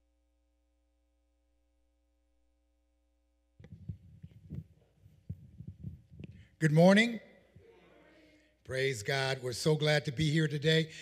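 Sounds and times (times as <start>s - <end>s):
microphone handling thumps: 3.6s - 6.5s.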